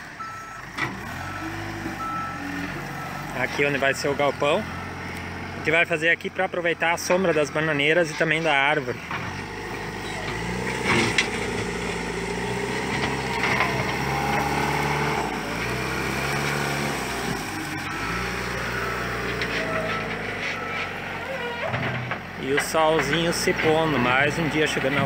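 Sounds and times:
diesel engine working: 0.0s - 25.0s.

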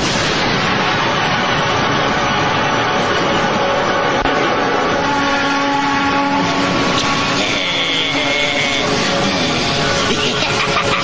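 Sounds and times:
sustained music notes: 1.4s - 11.0s.

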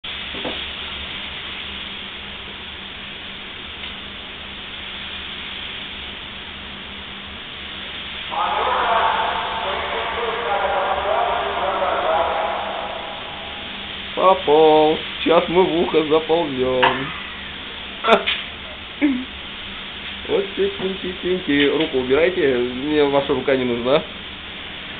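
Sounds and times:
low electrical hum: 0.0s - 24.9s
recording hiss: 0.0s - 24.9s
indistinct voices murmuring: 8.3s - 14.7s.

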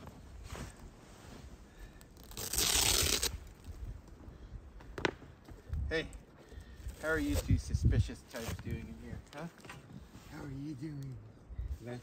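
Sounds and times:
rustling: 0.0s - 4.2s.

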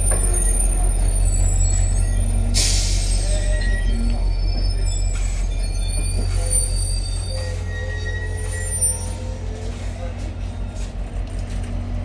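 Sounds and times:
train wheels squealing on rail: 0.0s - 11.2s
low rumble of train: 0.0s - 12.0s.

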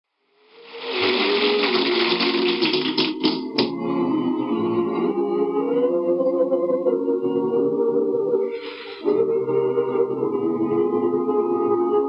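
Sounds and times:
audience applause: 0.6s - 3.7s.

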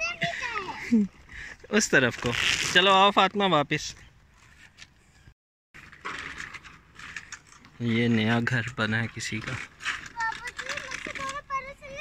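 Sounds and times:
faint outdoor noise: 0.0s - 12.0s
bicycles rolling over dirt: 5.8s - 12.0s.

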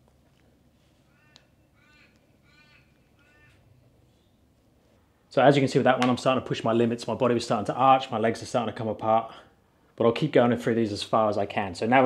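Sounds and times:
faint bird calling: 0.9s - 4.5s.

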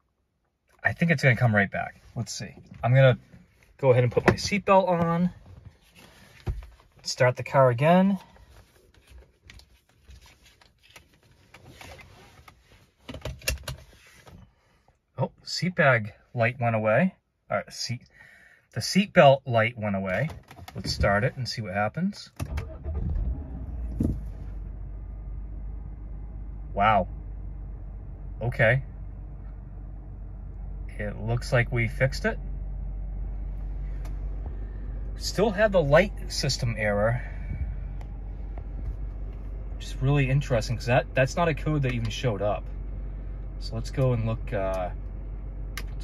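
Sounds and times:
seatbelt rustling: 8.3s - 14.5s
car engine idling: 22.5s - 46.0s.

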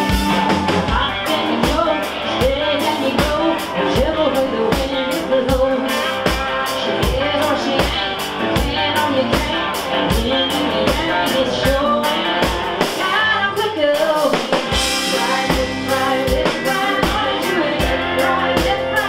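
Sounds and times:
country-rock band playing: 0.0s - 19.0s.

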